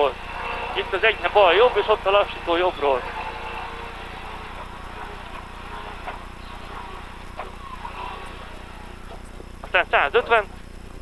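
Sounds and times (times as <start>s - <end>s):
car engine droning in cabin: 0.0s - 10.8s.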